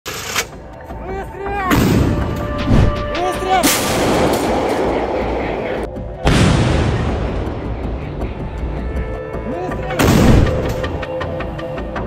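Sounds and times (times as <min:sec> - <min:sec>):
artillery gun blasts: 0:10.0 - 0:10.7.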